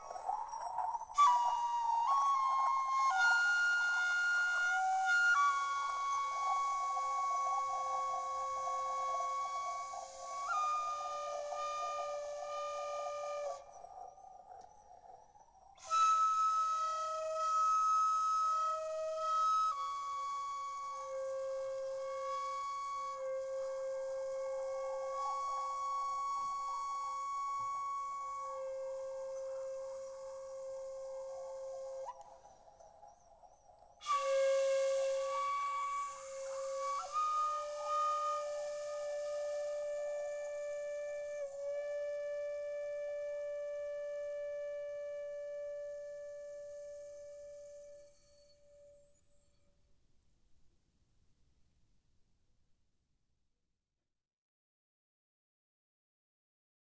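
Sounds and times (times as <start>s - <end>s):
bamboo flute long notes: 0.0s - 33.2s, 33.8s - 49.5s.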